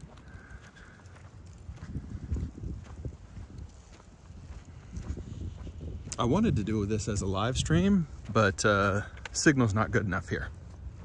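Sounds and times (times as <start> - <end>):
footsteps on concrete: 0.0 - 11.0
low steady rumble: 0.0 - 11.0.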